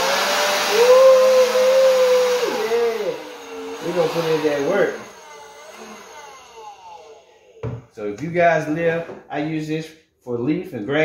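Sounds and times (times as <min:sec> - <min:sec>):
leaf blower motor spinning down: 0:00.0 - 0:08.0.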